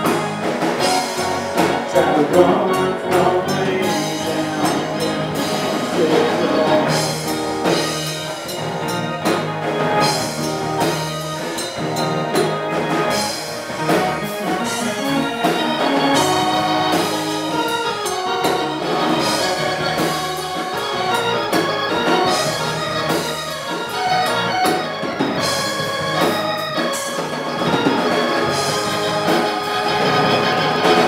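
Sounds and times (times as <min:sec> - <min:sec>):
bass guitar: 0:00.0 - 0:31.0
drum kit with cymbal hits: 0:00.0 - 0:31.0
electric guitar: 0:00.0 - 0:31.0
keyboard: 0:00.0 - 0:31.0.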